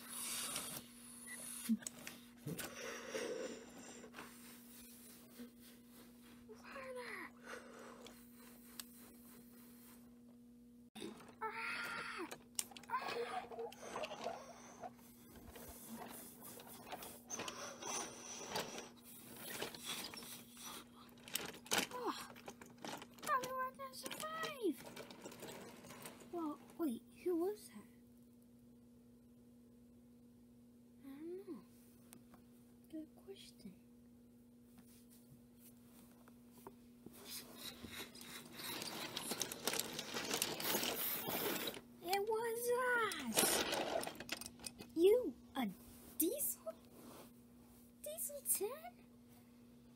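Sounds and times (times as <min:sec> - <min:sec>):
rustling and small clicks of toys: 0:11.0 - 0:26.8, 0:34.8 - 0:47.0.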